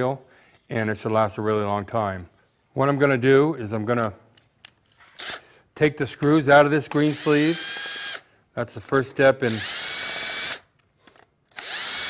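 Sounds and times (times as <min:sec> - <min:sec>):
cordless drill motor whine: 0:07.0 - 0:08.2, 0:09.5 - 0:10.6, 0:11.5 - 0:12.0.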